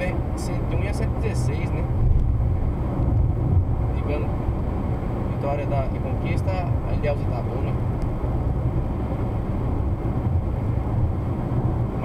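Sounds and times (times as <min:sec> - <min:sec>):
car engine rumble: 0:00.0 - 0:12.0.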